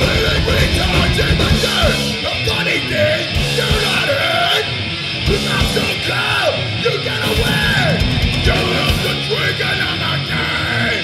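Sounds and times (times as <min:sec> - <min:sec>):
drum kit: 0:00.0 - 0:04.5, 0:05.1 - 0:10.5
distorted electric guitar: 0:00.0 - 0:11.0
hoarse yelled vocal: 0:00.0 - 0:11.0.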